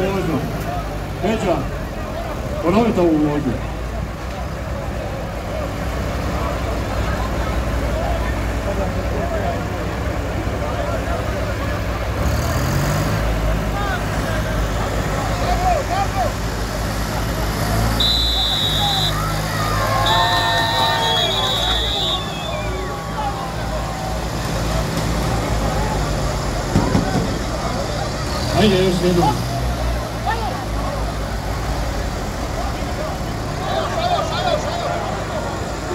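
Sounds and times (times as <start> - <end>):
crowd chatter: 0.0 - 35.9
tractor diesel engines idling: 0.0 - 35.9.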